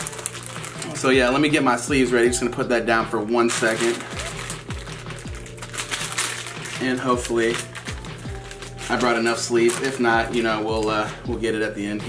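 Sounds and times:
background music with drum beat: 0.0s - 12.0s.

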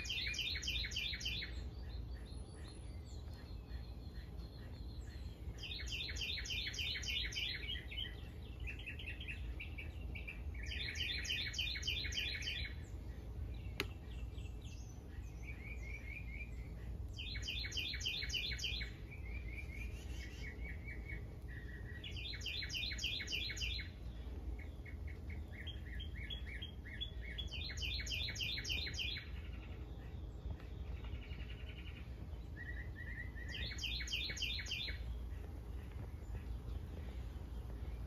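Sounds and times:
low steady rumble: 0.0s - 38.0s
other birds chirping softly: 0.0s - 38.0s
songbird high chirps: 0.0s - 38.0s.

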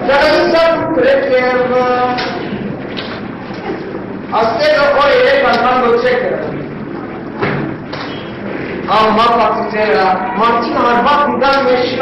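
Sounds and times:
person speaking: 0.0s - 7.4s, 8.5s - 12.0s
thump: 7.4s - 7.7s.

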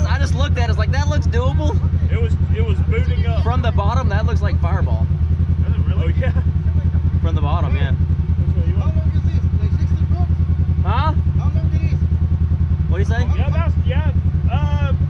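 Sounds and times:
people talking: 0.0s - 12.0s, 12.9s - 15.0s
vehicle engine running: 0.0s - 15.0s.

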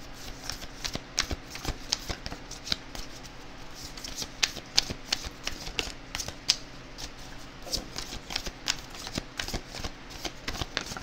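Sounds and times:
cards being shuffled: 0.2s - 11.0s.

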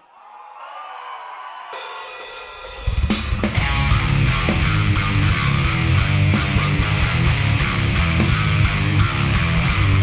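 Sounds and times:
cymbals: 1.8s - 4.8s
live metalcore band: 1.9s - 10.0s.

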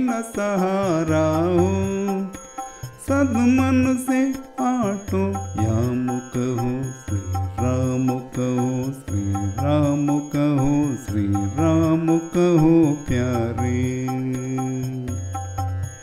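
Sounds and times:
instrumental accompaniment: 0.0s - 16.0s
person singing devotional song: 0.0s - 16.0s.

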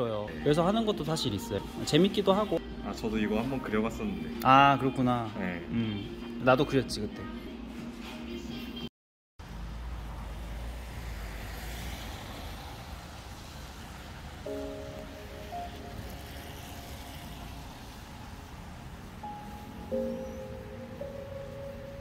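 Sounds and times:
light background music: 0.0s - 8.9s, 14.5s - 18.4s, 19.1s - 22.0s
tyres hissing on wet road: 9.5s - 20.2s.

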